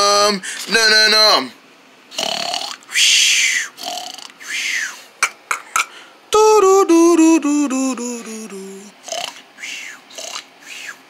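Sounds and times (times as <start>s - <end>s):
person singing: 6.3s - 9.0s
rough vocal sound effect: 6.4s - 9.4s.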